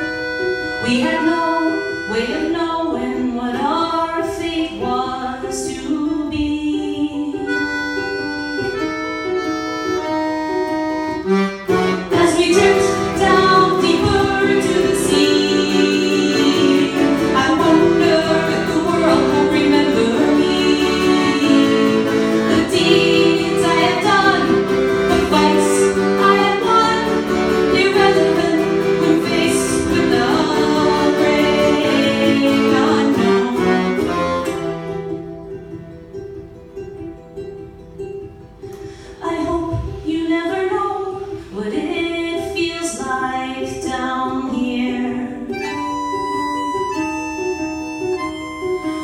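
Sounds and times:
accordion playing: 0:00.0 - 0:40.0, 0:45.0 - 0:49.0
ukulele strumming: 0:00.0 - 0:49.0.

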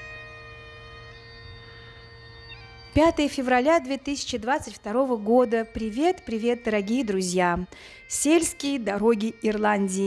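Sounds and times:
distant bagpipes: 0:00.0 - 0:10.0.

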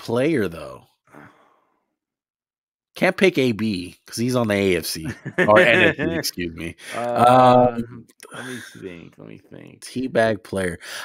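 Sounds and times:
man sighing: 0:06.8 - 0:07.4, 0:08.2 - 0:09.0.

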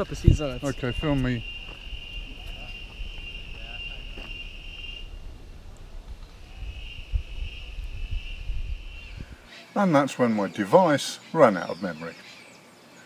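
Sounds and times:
insects chirring: 0:00.0 - 0:13.0.

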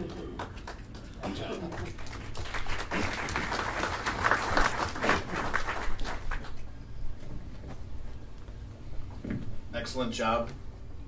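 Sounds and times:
applause: 0:00.0 - 0:06.6.

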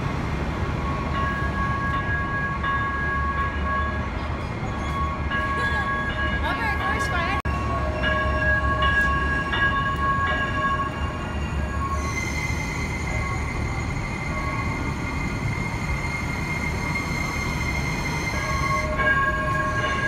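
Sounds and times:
train wheels rumbling on rail: 0:00.0 - 0:20.0.

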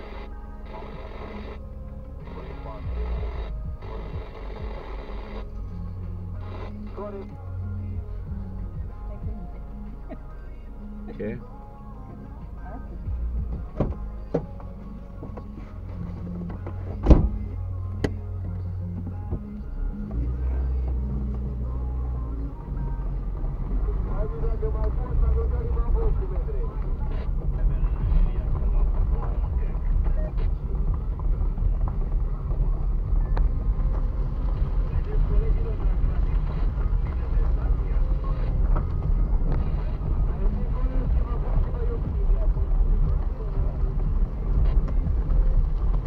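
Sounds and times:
car engine hum: 0:00.0 - 0:46.0
tyres rumbling on dirt road: 0:00.0 - 0:46.0.

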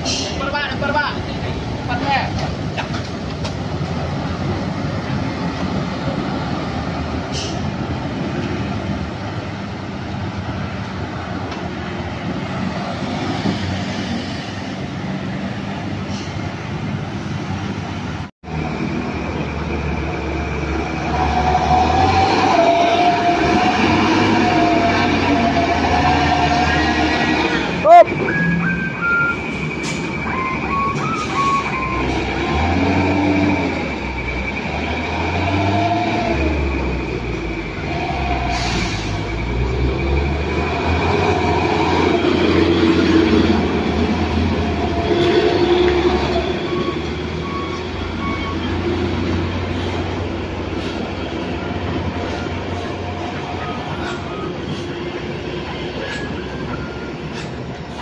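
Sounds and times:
heavy diesel engines rumbling under load: 0:00.0 - 0:58.0.

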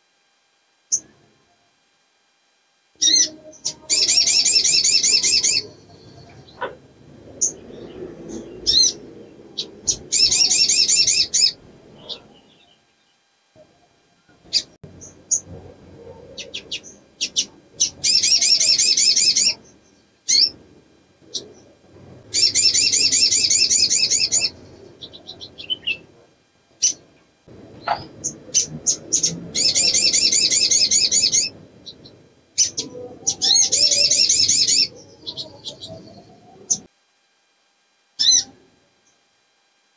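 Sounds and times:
bird rapid high trills: 0:03.0 - 0:12.8, 0:14.5 - 0:21.7, 0:22.3 - 0:26.1, 0:27.8 - 0:36.9, 0:38.2 - 0:38.6.

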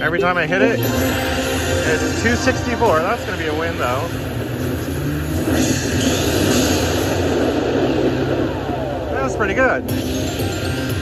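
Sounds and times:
slot machine electronic whoosh: 0:00.5 - 0:11.0.

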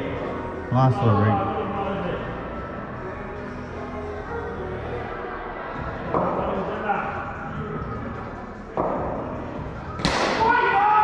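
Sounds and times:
sports hall background noise: 0:00.0 - 0:11.0.

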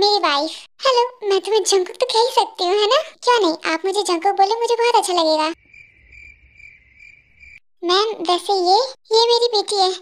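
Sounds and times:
crickets chirring: 0:05.6 - 0:07.6.

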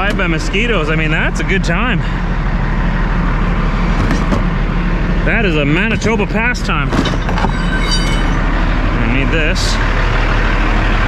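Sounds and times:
diesel truck engine idling: 0:00.0 - 0:11.0
metal bar scraping squeal: 0:07.1 - 0:08.5.

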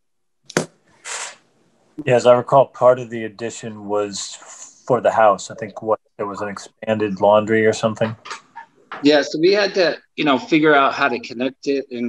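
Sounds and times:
breathy hiss on microphone: 0:00.9 - 0:01.5.

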